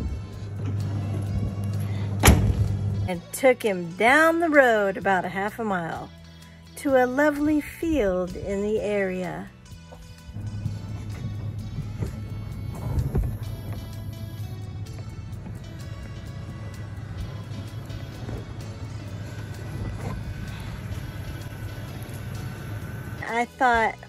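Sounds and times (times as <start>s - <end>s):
truck driving drone: 0.0s - 3.3s, 9.5s - 24.0s
background music: 0.0s - 24.0s.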